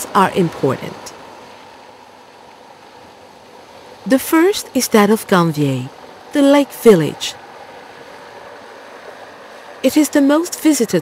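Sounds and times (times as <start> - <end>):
boat moving over water: 0.0 - 11.0.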